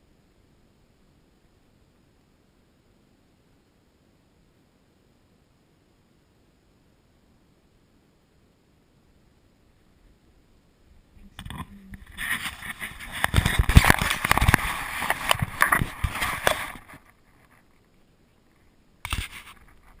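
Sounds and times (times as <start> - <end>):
fabric rubbing against camera: 11.3 - 17.7, 19.0 - 20.0
scraping with sharp clicks: 11.4 - 17.8, 19.0 - 20.0.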